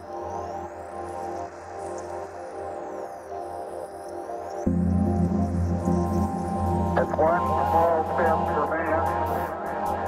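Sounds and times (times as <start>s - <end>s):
soundtrack music with low drone: 0.0s - 10.0s
person speaking: 7.0s - 9.2s.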